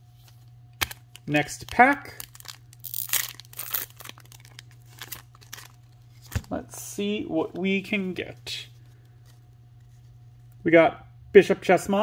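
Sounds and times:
foil wrapper tearing and crinkling: 0.8 - 6.3.

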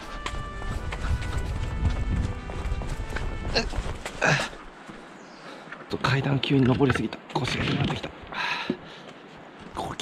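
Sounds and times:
background music: 0.0 - 4.6
quick footsteps climbing steps: 0.0 - 5.1.

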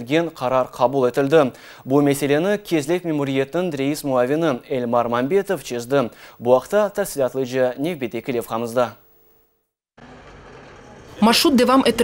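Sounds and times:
truck driving: 10.0 - 12.0.

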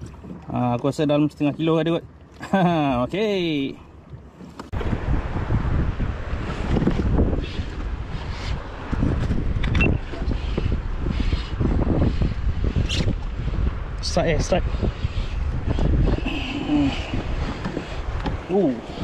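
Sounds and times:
sea water washing: 0.0 - 19.0
wind buffeting microphone: 3.7 - 19.0.

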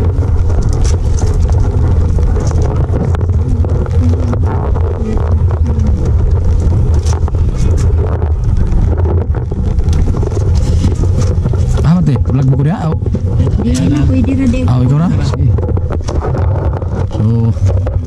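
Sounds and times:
raindrops pattering: 0.0 - 18.0
wind buffeting microphone: 0.0 - 18.0.

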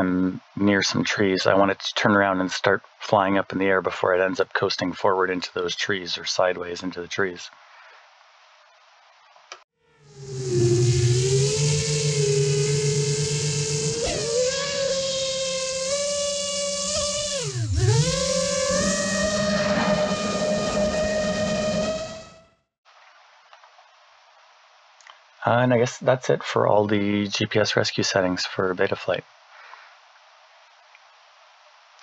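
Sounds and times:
quadcopter motors whining: 10.0 - 22.5.

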